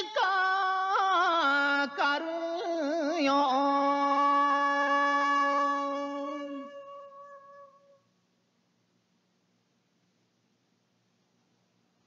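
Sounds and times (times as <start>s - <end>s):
man singing long note: 0.0s - 8.0s
tape hiss and hum: 0.0s - 12.0s.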